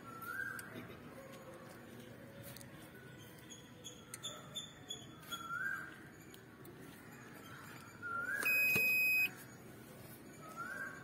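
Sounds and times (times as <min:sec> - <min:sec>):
high-pitched electronic beep: 0:08.4 - 0:09.3.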